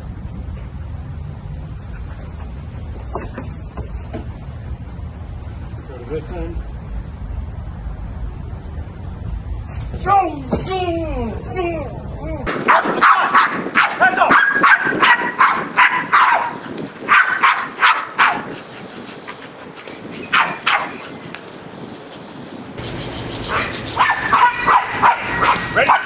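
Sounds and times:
dogs barking: 0:12.5 - 0:21.3, 0:22.8 - 0:26.0.

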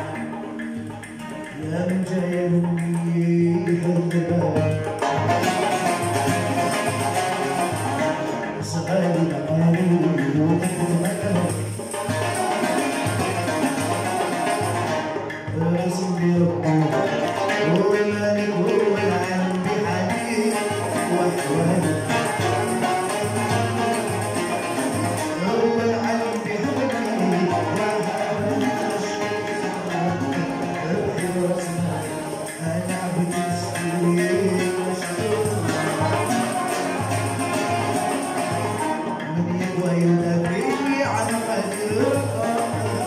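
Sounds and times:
frame drums beat: 0:00.0 - 0:43.0
oud banjos and guitar melody: 0:00.0 - 0:43.0.

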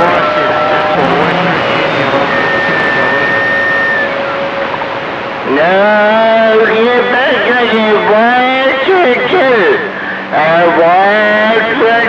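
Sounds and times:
men's voices over radio: 0:00.0 - 0:04.2, 0:05.4 - 0:12.0.

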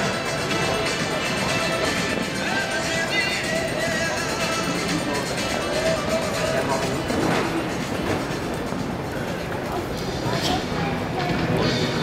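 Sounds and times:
faint background music: 0:00.0 - 0:12.0
rumble of arena noise: 0:00.0 - 0:12.0.

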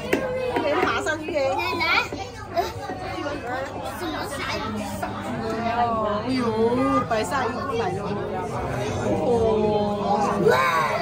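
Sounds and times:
crowd chatter: 0:00.0 - 0:11.0
children's high voices: 0:10.0 - 0:11.0.

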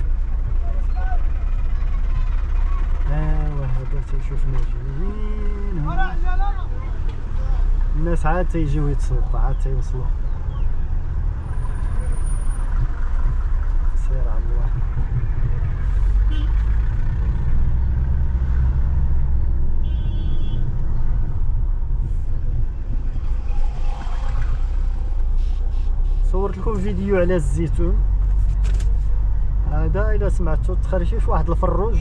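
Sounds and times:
car engine and road noise: 0:00.0 - 0:32.0.

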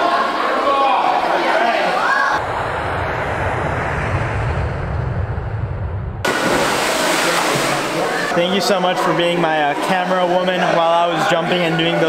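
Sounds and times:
splashing water: 0:06.3 - 0:08.3.

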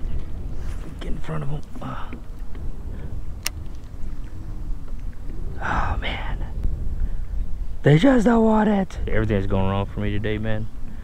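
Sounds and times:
wind rumbling on microphone: 0:00.0 - 0:11.0
breathy whisper-like sound: 0:05.5 - 0:06.6.

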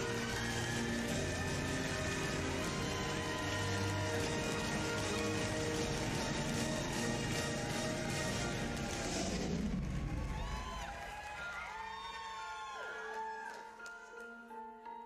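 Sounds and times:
studio audience cheering: 0:00.0 - 0:13.7.

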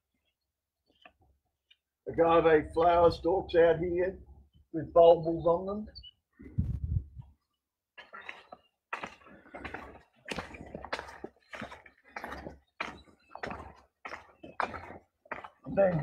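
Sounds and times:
footsteps on gravel path: 0:08.0 - 0:16.0.

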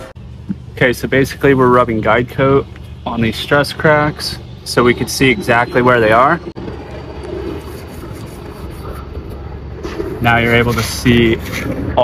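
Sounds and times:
low outdoor rumble: 0:00.0 - 0:12.0
pad scrubbing a surface: 0:07.4 - 0:11.9.

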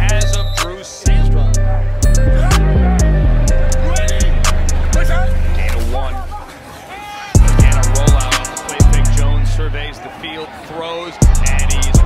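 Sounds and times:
person rapping: 0:00.0 - 0:06.5, 0:07.4 - 0:09.8, 0:11.2 - 0:12.0
hip hop beat: 0:00.0 - 0:06.6, 0:07.3 - 0:12.0.

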